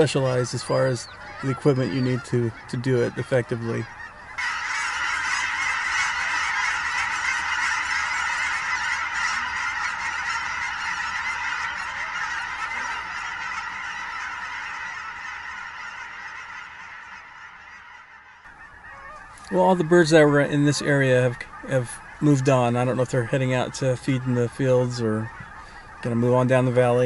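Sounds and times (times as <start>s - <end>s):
flock of birds calling: 0.0s - 27.0s.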